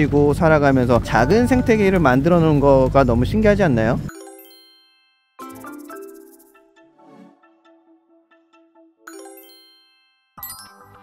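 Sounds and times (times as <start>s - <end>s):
faint ticking background music: 0.0s - 11.0s
bright chime: 4.1s - 6.6s, 9.1s - 11.0s.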